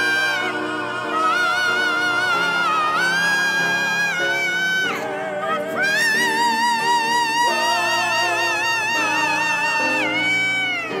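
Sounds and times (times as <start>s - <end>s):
sustained accompaniment chords: 0.0s - 11.0s.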